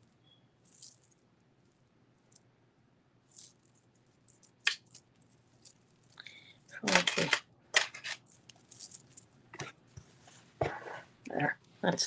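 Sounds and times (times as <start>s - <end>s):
pearls clicking and rattling: 0.6s - 2.4s, 3.3s - 9.4s.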